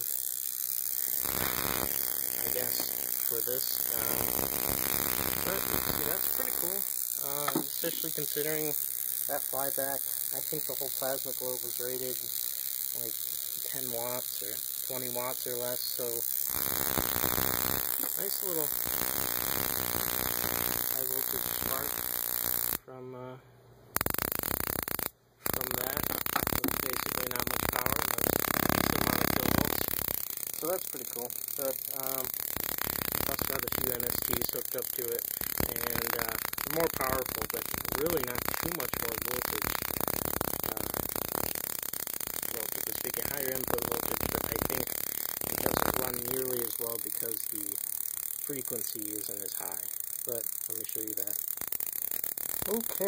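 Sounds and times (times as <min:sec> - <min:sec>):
electrical buzz: 0:00.0 - 0:22.8, 0:23.9 - 0:53.0
high-voltage arc crackling: 0:00.0 - 0:22.8, 0:23.9 - 0:53.0
high-pitched whine and hiss: 0:00.0 - 0:23.4, 0:24.0 - 0:53.0.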